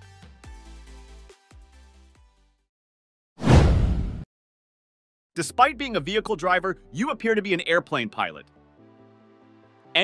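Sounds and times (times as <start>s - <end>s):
whoosh transition effect: 3.4s - 4.2s.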